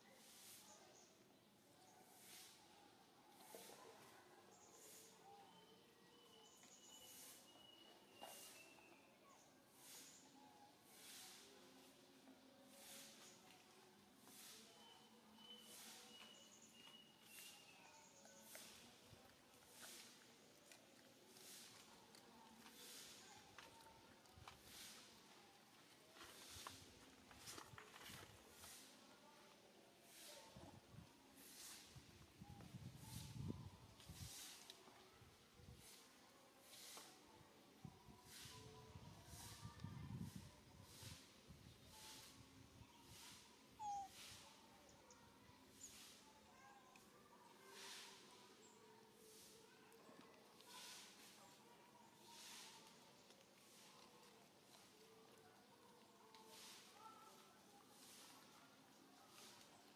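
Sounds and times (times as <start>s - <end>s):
squeaky animal call: 43.8s - 44.1s.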